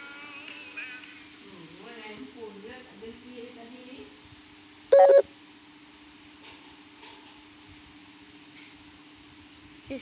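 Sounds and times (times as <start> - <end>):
faint steady hum: 3.0 - 6.6
short loud beep: 4.9 - 5.2.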